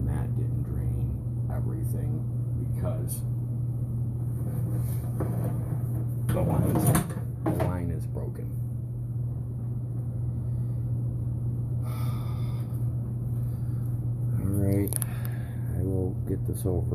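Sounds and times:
low hum: 0.0s - 16.9s.

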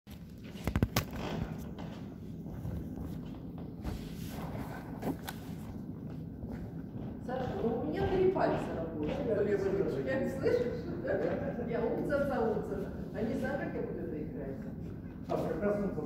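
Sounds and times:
low room hum: 0.1s - 16.0s
footsteps on wooden floor: 1.2s - 10.1s.

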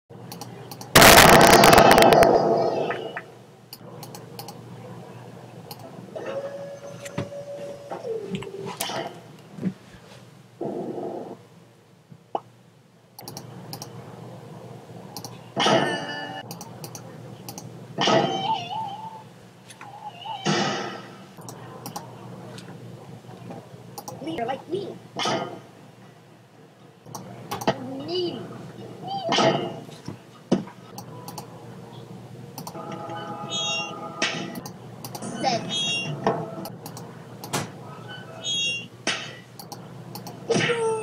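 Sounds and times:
sharp clicks: 0.3s - 2.3s, 3.7s - 4.6s, 5.7s - 5.9s, 13.2s - 13.9s, 15.2s - 15.4s, 16.4s - 17.7s, 21.4s - 22.1s, 24.0s - 24.2s, 31.0s - 31.5s, 32.6s - 32.8s, 34.6s - 35.3s, 36.6s - 37.6s, 39.6s - 40.4s
crackling burst of noise: 0.9s - 3.4s
loud sudden cartoon sound: 1.0s - 3.1s.

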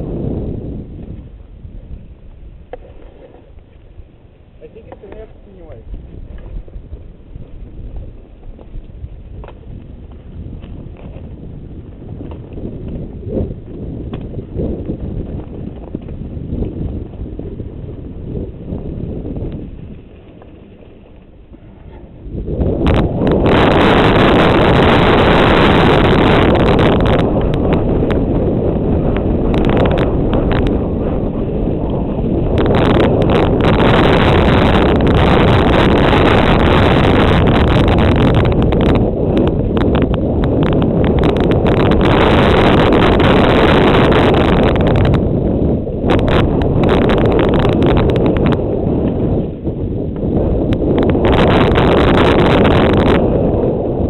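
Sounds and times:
bike tyres rolling on dirt: 0.0s - 54.0s
wind buffeting microphone: 0.0s - 54.0s
bike clicks and rattles: 0.9s - 4.2s, 5.9s - 22.2s
bike knocks and rattles: 2.6s - 3.8s.

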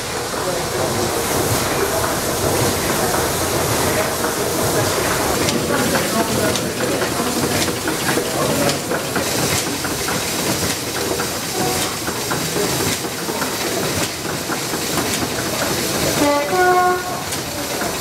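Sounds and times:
steam hiss: 0.0s - 18.0s
stationary engines clattering: 0.1s - 18.0s.

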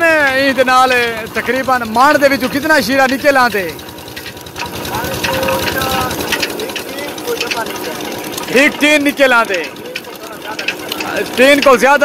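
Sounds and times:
diesel engine chugging: 0.0s - 12.0s.

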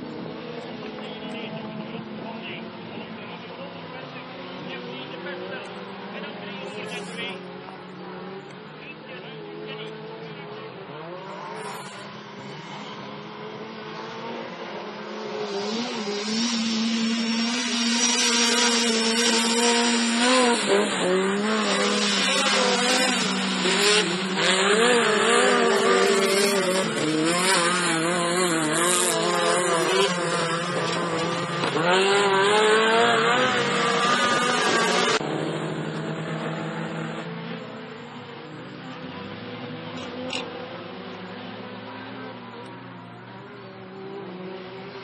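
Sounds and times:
race car engines revving: 0.0s - 45.0s.

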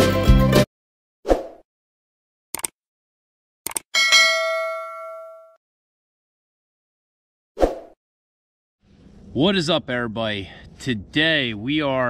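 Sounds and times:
short swish: 1.3s - 1.6s, 7.6s - 8.0s
bell ding: 4.0s - 5.6s.

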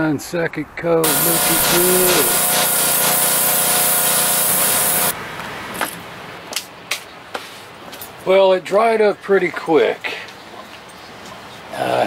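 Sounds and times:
machine hum: 1.0s - 5.2s
pressure washer spray hiss: 1.0s - 5.2s.

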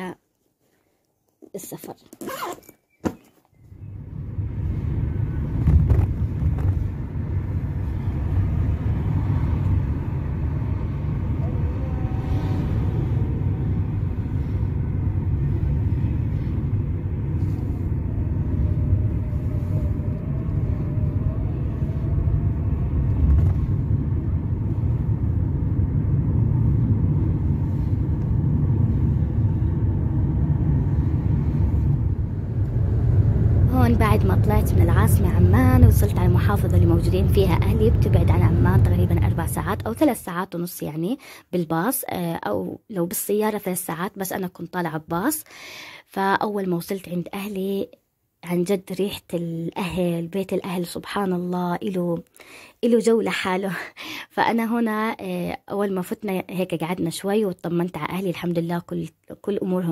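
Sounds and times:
car cabin road rumble: 3.7s - 40.2s.

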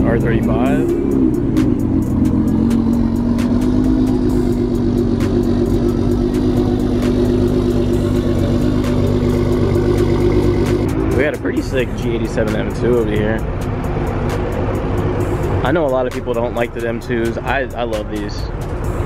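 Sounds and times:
car engine revving: 0.0s - 19.0s.

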